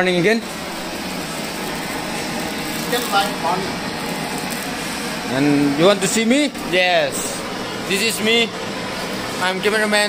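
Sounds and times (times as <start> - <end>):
blowtorch flame hissing: 0.1 - 10.0.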